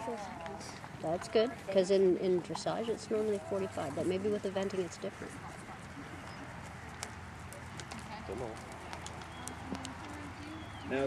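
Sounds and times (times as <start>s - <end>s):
distant voices: 0.0s - 11.0s
low outdoor background noise: 0.0s - 11.0s.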